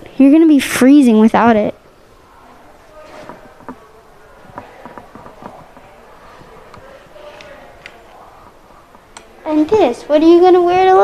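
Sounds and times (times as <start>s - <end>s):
footsteps: 2.9s - 9.2s
light knocks: 3.1s - 3.9s, 4.5s - 6.0s.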